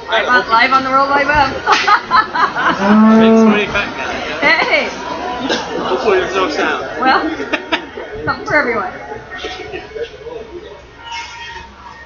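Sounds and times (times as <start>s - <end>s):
cow mooing: 2.8s - 3.7s.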